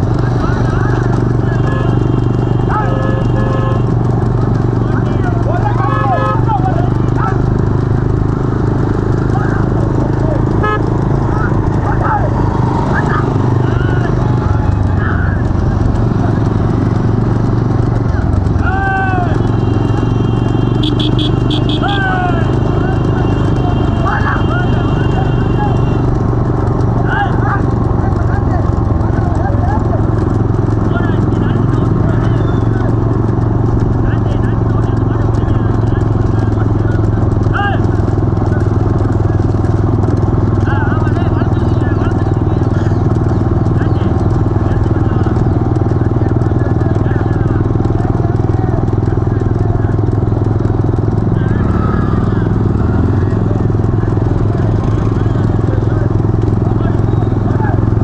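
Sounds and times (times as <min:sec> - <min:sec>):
hooves clattering on asphalt: 0:00.0 - 0:58.0
motorcycles droning: 0:00.0 - 0:58.0
men shouting: 0:00.1 - 0:17.2, 0:17.9 - 0:39.6, 0:51.2 - 0:58.0.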